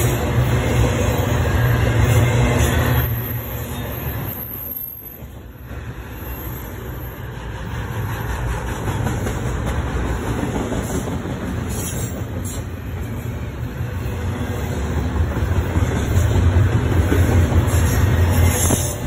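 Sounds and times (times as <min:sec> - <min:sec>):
train wheels rumbling on rails: 0:00.0 - 0:19.0.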